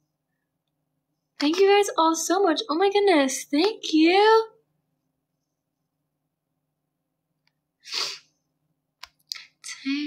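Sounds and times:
sharp burst of breath: 0:07.8 - 0:08.4.

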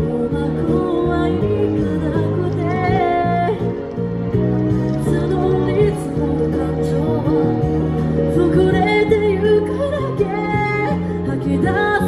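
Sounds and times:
person singing amplified: 0:00.0 - 0:03.8, 0:05.0 - 0:12.0
backing music with bass: 0:00.0 - 0:12.0.

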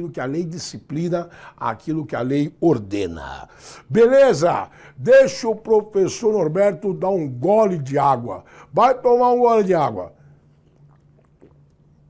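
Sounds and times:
low room hum: 0:00.0 - 0:12.0
man swallowing water: 0:10.6 - 0:12.0.

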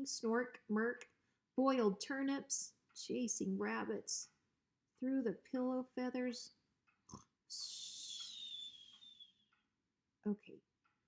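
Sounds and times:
breathy whistling exhale: 0:07.6 - 0:09.3.

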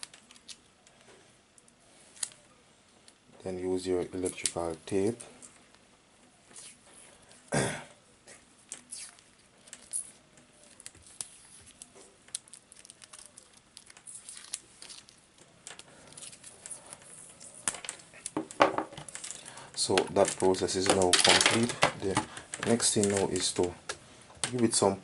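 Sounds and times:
tape peeling off roll: 0:08.7 - 0:18.4.

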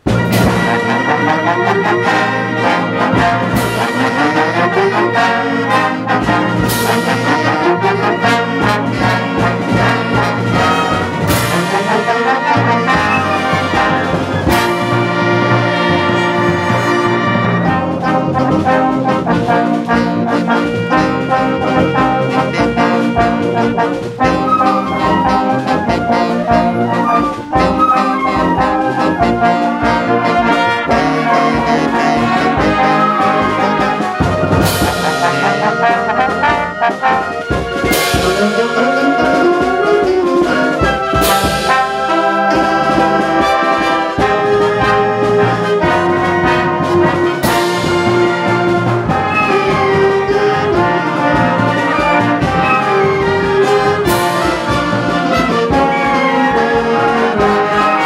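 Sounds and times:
concert band playing: 0:00.0 - 0:58.0.

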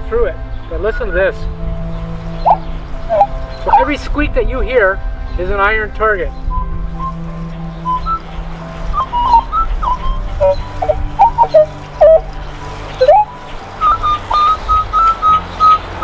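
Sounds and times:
metal detector squeaks and chirps: 0:02.5 - 0:03.9, 0:09.0 - 0:12.2, 0:13.0 - 0:15.4.

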